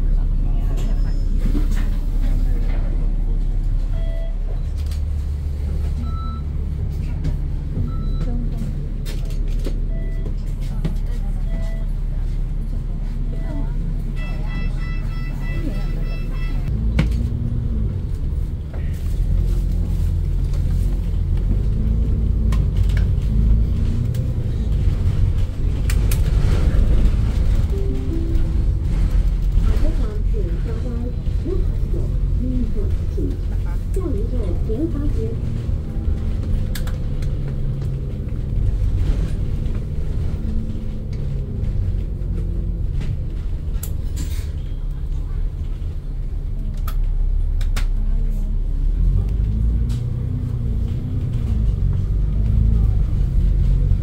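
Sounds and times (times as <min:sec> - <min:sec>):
bus diesel engine rumble: 0:00.0 - 0:54.0
short electronic beeps: 0:14.2 - 0:16.7.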